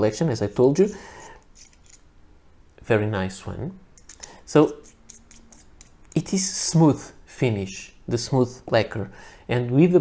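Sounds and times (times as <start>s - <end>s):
metal threads scraping: 0.5s - 2.1s, 4.0s - 6.4s
man speaking: 4.5s - 4.8s, 6.1s - 10.0s.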